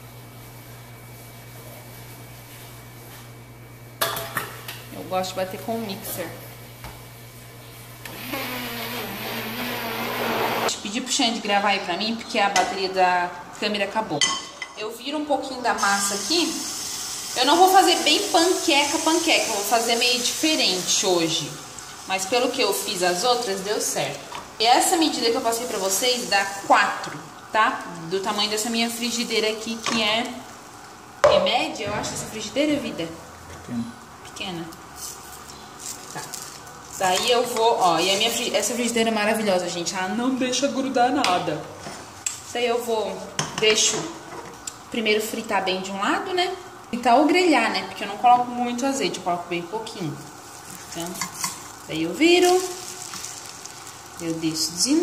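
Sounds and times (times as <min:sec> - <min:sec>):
immersion blender whirring: 0:08.0 - 0:10.7
batter sizzling in frying pan: 0:15.8 - 0:31.2, 0:48.1 - 0:55.0.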